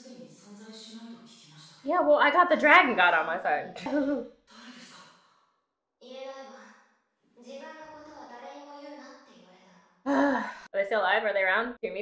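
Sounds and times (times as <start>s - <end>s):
breathy sigh: 10.1s - 10.7s.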